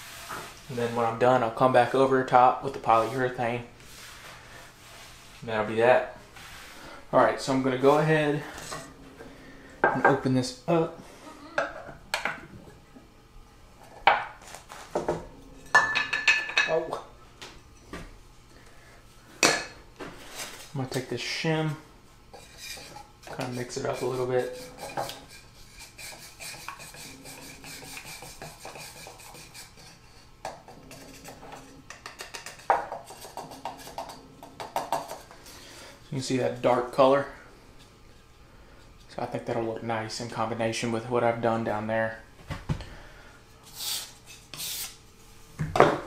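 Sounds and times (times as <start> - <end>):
wooden stick scraping metal can: 22.4 - 30.2.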